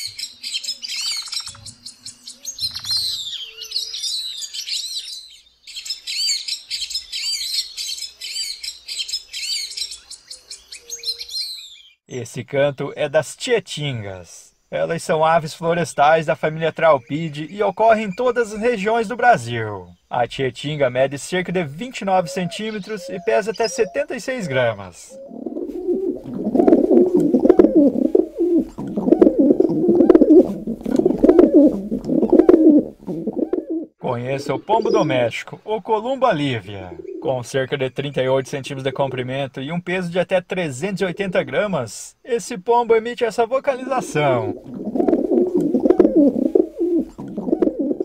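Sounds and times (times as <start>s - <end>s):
pigeons cooing: 0.0s - 4.2s, 21.6s - 35.3s, 36.2s - 37.3s, 43.8s - 48.0s.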